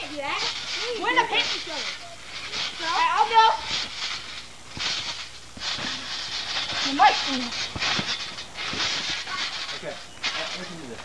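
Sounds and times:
trampoline mat thuds: 0.2 - 11.0.

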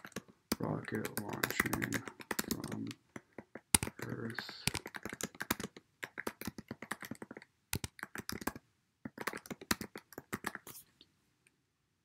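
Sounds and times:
typing on computer keyboard: 0.0 - 10.8.

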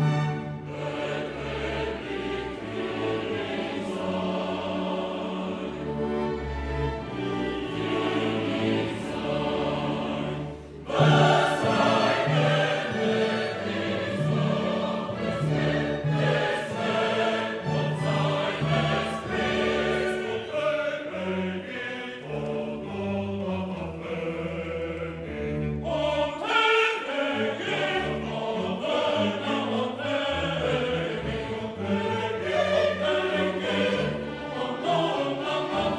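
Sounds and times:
mixed choir singing: 0.0 - 35.9
symphony orchestra playing: 0.0 - 35.9.

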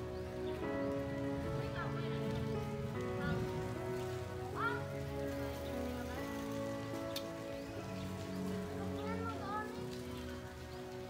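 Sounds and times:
slow sustained chords: 0.0 - 11.0.

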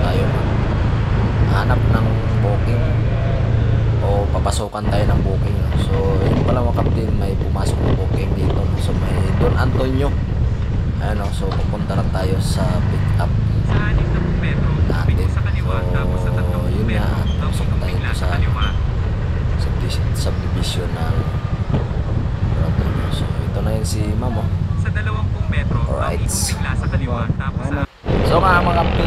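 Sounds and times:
person talking: 0.0 - 0.5, 1.5 - 3.0, 4.0 - 10.2, 11.0 - 18.8, 19.6 - 21.4, 22.6 - 29.0
motorcycle engine rumble: 0.0 - 29.0
wind on microphone: 0.0 - 29.0.

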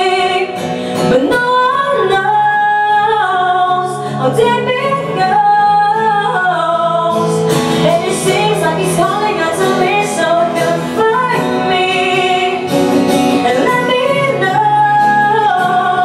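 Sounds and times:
strummed acoustic guitar: 0.0 - 16.0
woman singing: 0.0 - 16.0.

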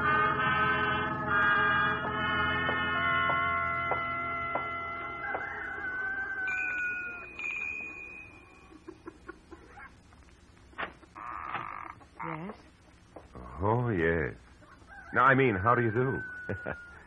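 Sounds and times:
held music chord: 0.0 - 5.3
chickens clucking: 5.0 - 10.0, 14.4 - 17.0.

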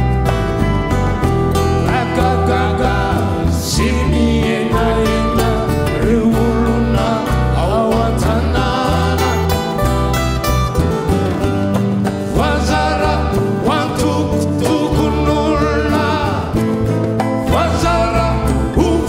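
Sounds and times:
plucked guitars: 0.0 - 19.0
steady bass: 0.0 - 19.0
voices singing: 1.6 - 10.2, 11.9 - 19.0.

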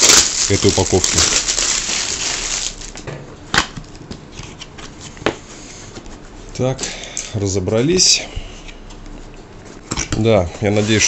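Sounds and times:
plastic shrink-wrap crinkling: 0.0 - 3.0.

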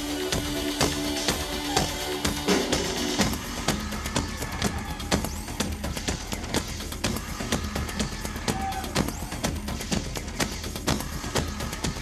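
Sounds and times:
programmed drum beat: 0.0 - 12.0.

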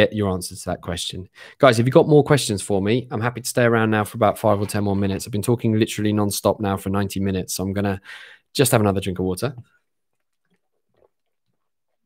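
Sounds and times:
man swallowing water: 9.6 - 12.0.

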